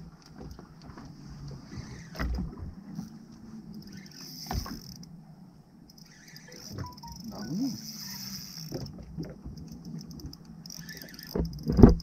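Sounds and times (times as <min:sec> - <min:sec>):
fishing reel whirring and ticking: 0:03.0 - 0:05.1, 0:05.8 - 0:09.0, 0:09.6 - 0:12.0.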